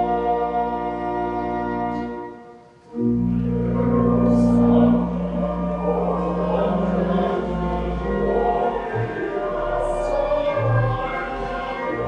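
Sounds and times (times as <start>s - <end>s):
keyboard accompaniment: 0.0s - 12.0s
choir singing a hymn: 3.7s - 12.0s.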